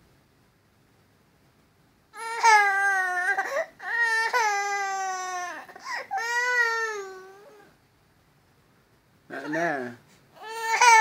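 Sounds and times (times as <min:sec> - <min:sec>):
toddler crying: 0:02.2 - 0:07.7, 0:10.4 - 0:11.0.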